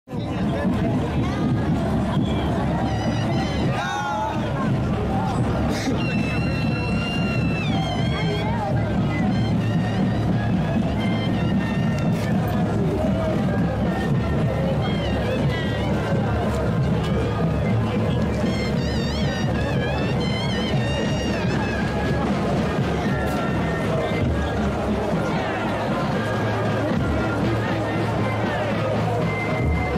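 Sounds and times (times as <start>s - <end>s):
crowd voices: 0.0s - 29.9s
low drumbeat: 0.1s - 29.9s
wind instrument melodies: 0.1s - 29.9s.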